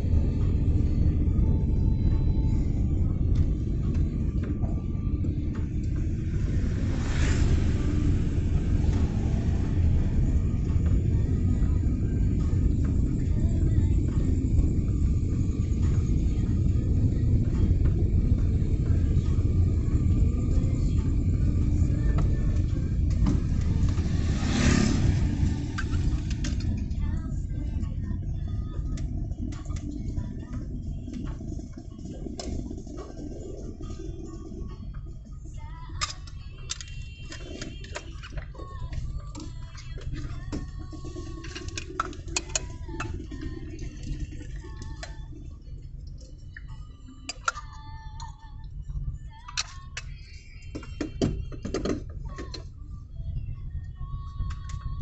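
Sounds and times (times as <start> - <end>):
car road and engine rumble: 0.0 - 55.0
passing vehicle whoosh: 5.8 - 11.5, 22.7 - 27.0.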